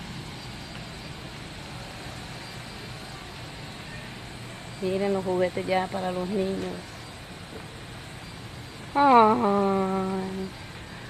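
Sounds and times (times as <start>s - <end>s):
low hum of store interior: 0.0s - 11.0s.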